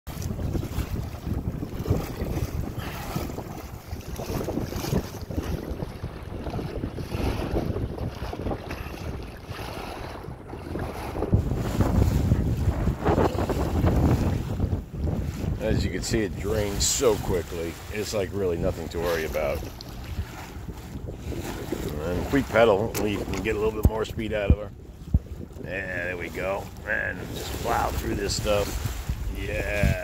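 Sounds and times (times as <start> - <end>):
waves splashing against kayak hull: 0.1 - 30.0
wind buffeting microphone: 0.1 - 30.0.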